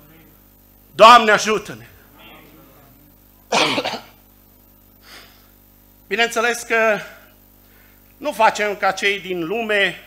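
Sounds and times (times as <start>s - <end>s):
man coughing: 3.5s - 4.2s
faint breath intake: 5.0s - 5.6s, 7.6s - 8.2s.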